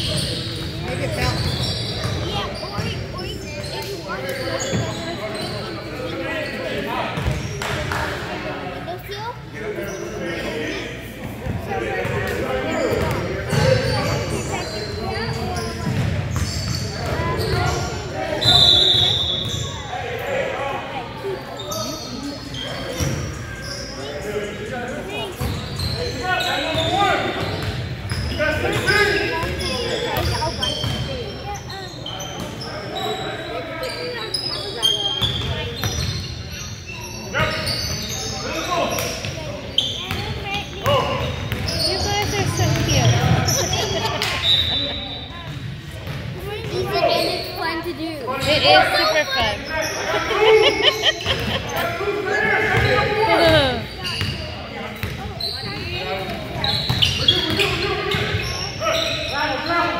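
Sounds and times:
sneaker squeaks: 0:00.0 - 0:20.0, 0:21.0 - 0:59.9
people talking: 0:00.0 - 0:59.9.

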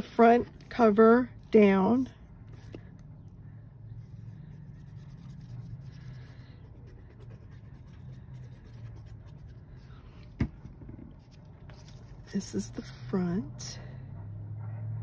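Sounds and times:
paper handling: 0:11.1 - 0:12.4.

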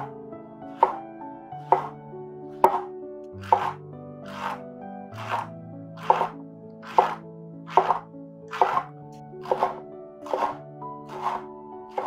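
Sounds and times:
background music with held notes: 0:00.0 - 0:12.0
knife cutting on wooden board: 0:01.7 - 0:01.9, 0:02.7 - 0:04.6, 0:05.2 - 0:11.4.

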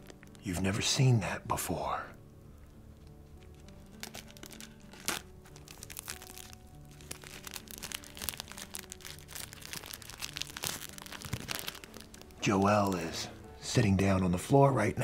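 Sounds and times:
plastic wrap crinkling: 0:00.0 - 0:00.5, 0:03.0 - 0:13.4
soft background music: 0:00.0 - 0:15.0.

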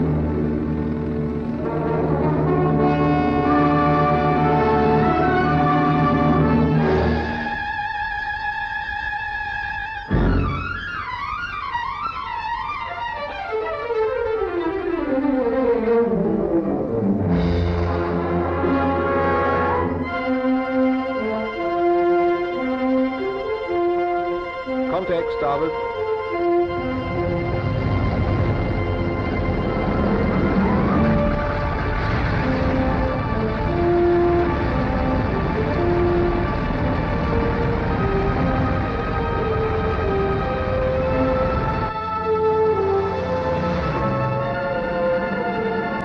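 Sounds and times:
orchestral music led by brass: 0:00.0 - 0:46.0.

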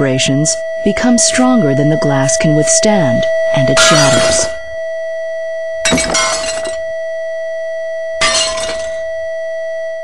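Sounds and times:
steady loud tone: 0:00.0 - 0:10.0
glass shattering: 0:03.8 - 0:04.6, 0:05.9 - 0:06.8, 0:08.2 - 0:09.0.

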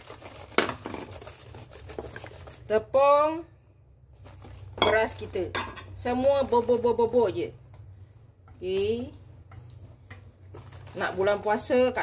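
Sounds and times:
whisk scraping steel bowl: 0:00.0 - 0:02.8, 0:07.9 - 0:12.0.

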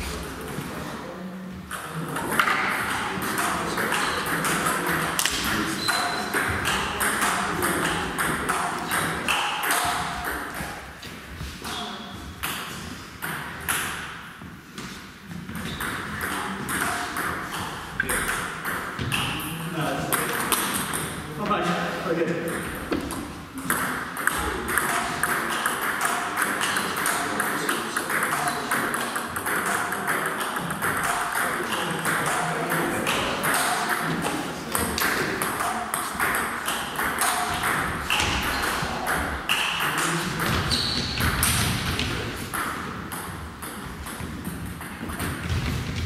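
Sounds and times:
table tennis balls clicking: 0:01.7 - 0:14.2, 0:14.8 - 0:21.3, 0:22.4 - 0:46.0.

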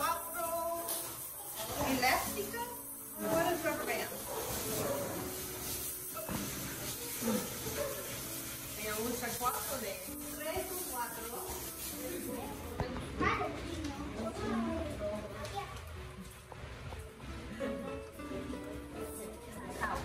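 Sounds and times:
adults and children chattering: 0:00.0 - 0:20.0.

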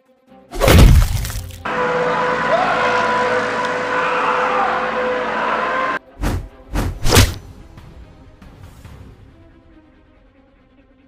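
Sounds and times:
sharp whooshing hits: 0:06.2 - 0:07.4.

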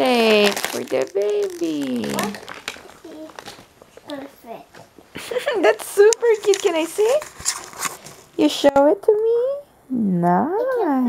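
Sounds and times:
person speaking: 0:00.0 - 0:03.4
plastic wrapper crinkling: 0:00.0 - 0:08.8.

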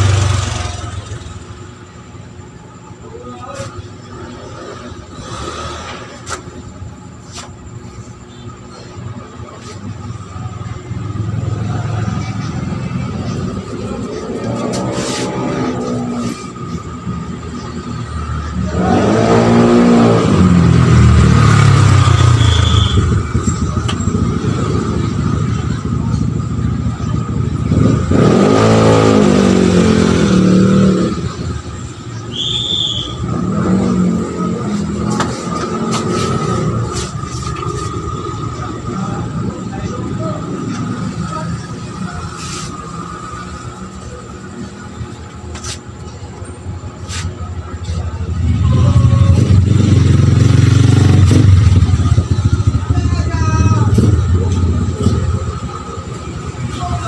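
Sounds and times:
vehicles passing on street: 0:00.0 - 0:57.0.

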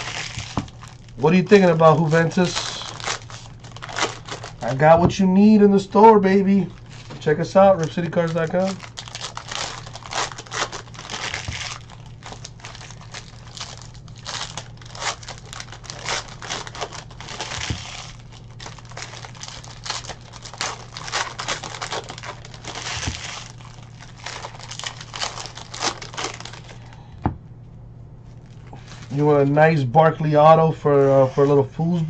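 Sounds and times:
plastic wrappers crinkling and tearing: 0:00.0 - 0:27.0, 0:28.2 - 0:29.5
steady low hum: 0:00.0 - 0:32.0.

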